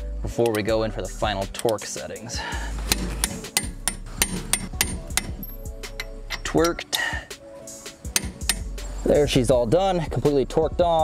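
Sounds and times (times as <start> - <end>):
ratchet clicking: 2.8 - 6.8, 8.1 - 8.9.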